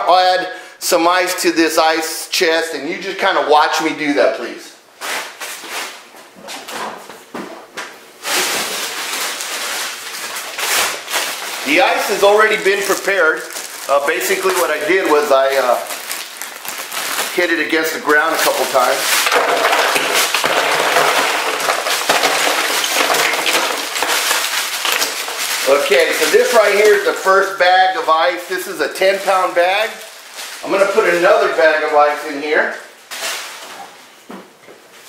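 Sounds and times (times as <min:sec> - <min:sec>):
bag of ice rustling: 0:08.2 - 0:34.0
ice cubes clattering into plastic chest: 0:18.2 - 0:27.1.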